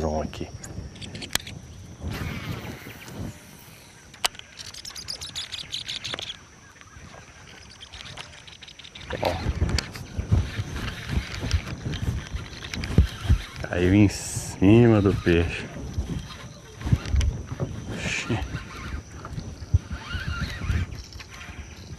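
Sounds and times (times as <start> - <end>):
fishing reel ticking: 0.9 - 21.9.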